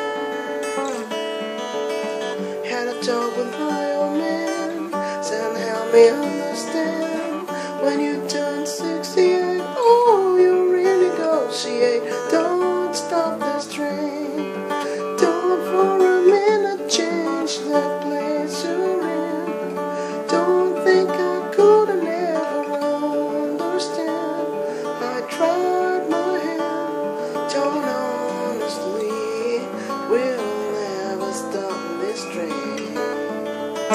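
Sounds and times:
acoustic guitar playing: 0:00.0 - 0:33.9
man singing: 0:02.3 - 0:33.9.

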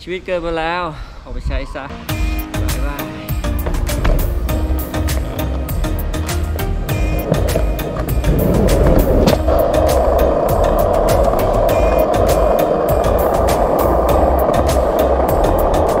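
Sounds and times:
background music with steady beat: 0:01.8 - 0:16.0
skateboard wheels rolling on concrete: 0:02.1 - 0:16.0.

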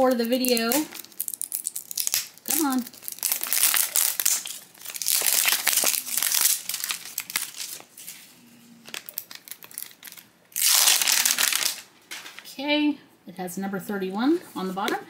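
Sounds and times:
plastic wrapper crackling: 0:00.0 - 0:12.5.

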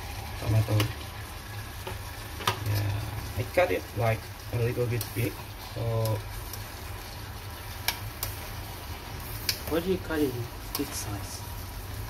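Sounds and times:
saucepan hissing: 0:00.0 - 0:12.0.

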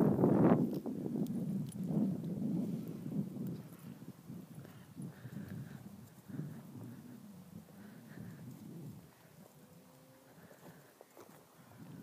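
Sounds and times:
wind noise: 0:00.0 - 0:12.0.

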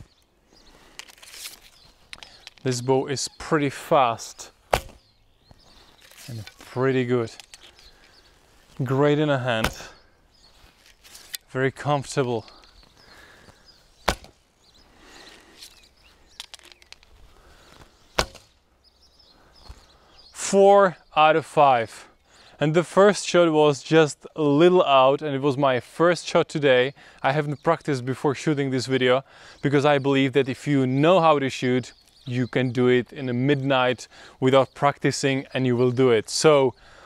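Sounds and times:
short rustle: 0:00.0 - 0:02.8, 0:05.6 - 0:09.0, 0:10.4 - 0:11.6
light clicks of arrows: 0:00.8 - 0:02.8, 0:05.8 - 0:08.8, 0:15.3 - 0:18.6.

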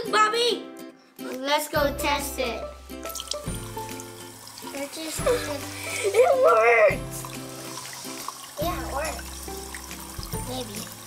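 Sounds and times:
background music: 0:00.0 - 0:11.0
faucet running into sink: 0:03.0 - 0:11.0
hands lathering soap: 0:03.1 - 0:11.0.

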